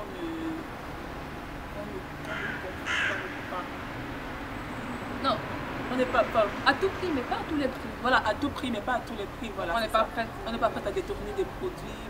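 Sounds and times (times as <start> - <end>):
woman speaking: 0.0 - 0.7, 5.2 - 12.0
crow cawing: 2.3 - 3.6.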